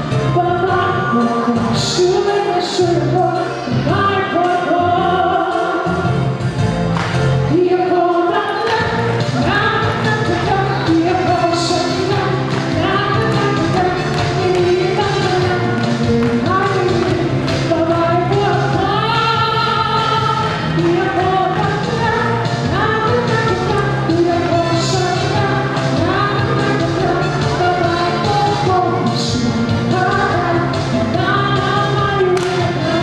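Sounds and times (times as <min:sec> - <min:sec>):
woman singing into a microphone: 0:00.0 - 0:06.2, 0:07.5 - 0:33.0
amplified accompanying music: 0:00.0 - 0:33.0.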